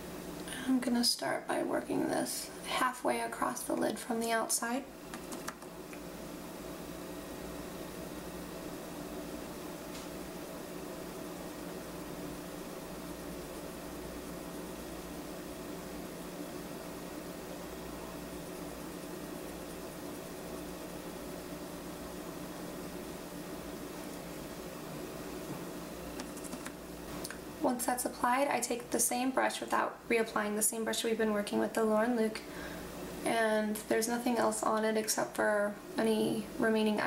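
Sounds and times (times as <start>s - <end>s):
room hum and hiss: 0.0s - 37.0s.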